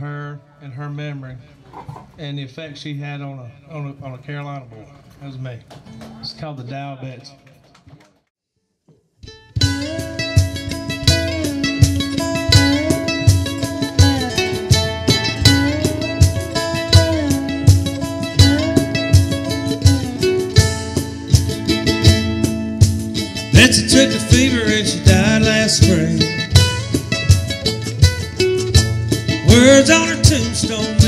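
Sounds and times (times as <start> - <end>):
strummed acoustic guitar: 9.3 - 31.0.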